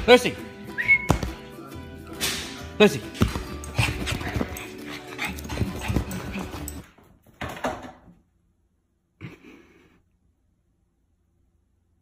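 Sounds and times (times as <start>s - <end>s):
background music: 0.0s - 7.0s.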